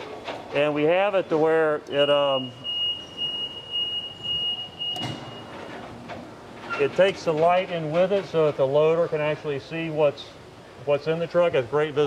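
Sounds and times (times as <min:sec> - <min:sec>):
conveyor running: 0:00.0 - 0:12.0.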